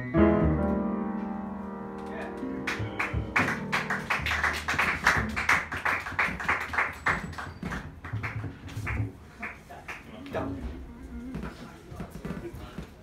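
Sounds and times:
piano chord: 0:00.0 - 0:05.5
upright bass: 0:00.0 - 0:05.6.

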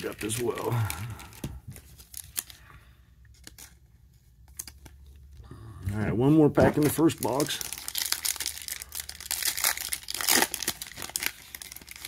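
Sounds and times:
plastic sleeve rustling: 0:00.0 - 0:02.7, 0:06.7 - 0:12.0.

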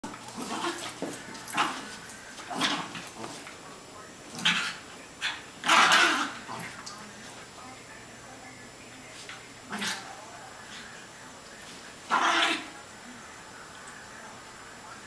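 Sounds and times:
small dogs play-fighting: 0:00.0 - 0:07.6, 0:09.1 - 0:13.0.

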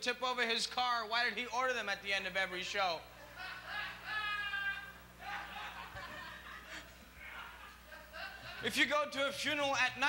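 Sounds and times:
audience laughing: 0:03.2 - 0:04.5, 0:05.2 - 0:08.8.

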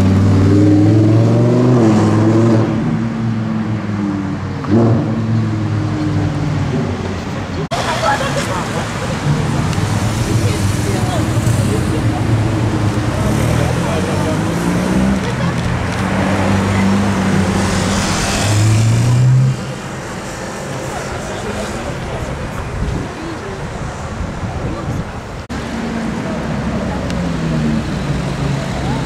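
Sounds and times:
cars passing: 0:00.0 - 0:29.0
sports car accelerating past: 0:11.4 - 0:20.1.

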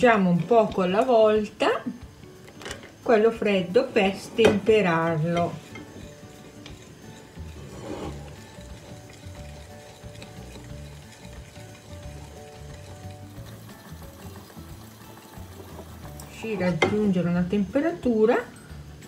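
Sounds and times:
quiet background music: 0:00.0 - 0:19.0
whisk scraping ceramic bowl: 0:03.5 - 0:17.9.

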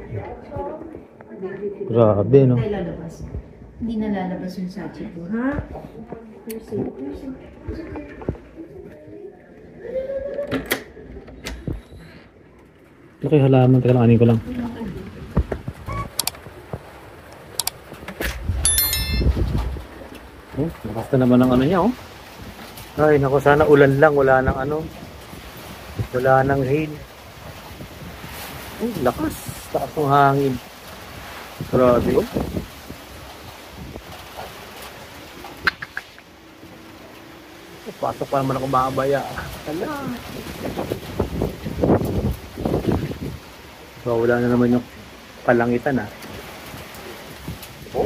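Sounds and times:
gusting wind: 0:02.6 - 0:06.3, 0:14.0 - 0:48.0
steady rain: 0:03.8 - 0:18.8, 0:19.4 - 0:48.0
short high squeaks: 0:15.8 - 0:16.3.

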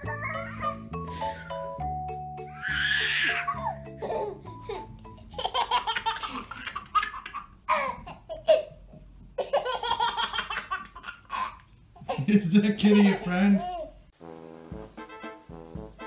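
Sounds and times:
baby laughing: 0:02.5 - 0:08.8, 0:09.4 - 0:14.0.

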